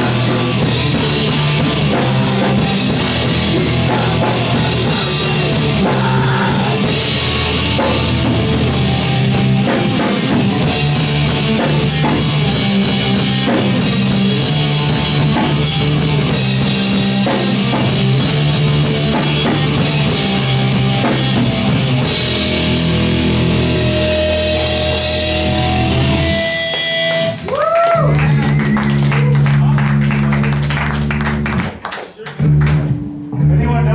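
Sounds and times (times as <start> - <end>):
distorted electric guitar: 0.0 - 31.7, 32.4 - 33.9
bass guitar: 0.0 - 33.9
drum kit with cymbal hits: 0.0 - 33.9.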